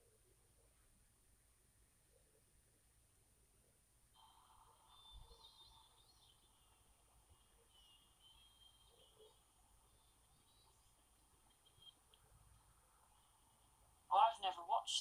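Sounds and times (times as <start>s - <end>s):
faint high chirps: 4.1s - 14.1s.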